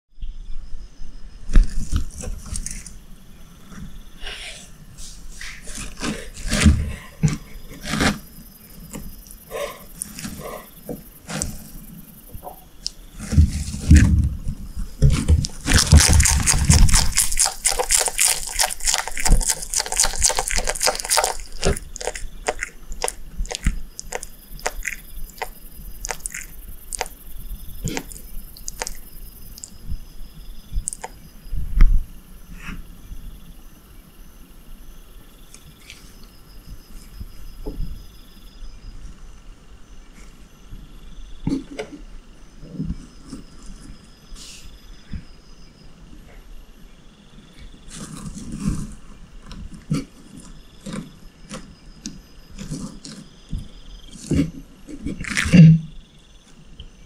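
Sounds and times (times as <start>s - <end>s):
lizard crunching beetles: 5.3s - 31.6s, 47.7s - 56.9s.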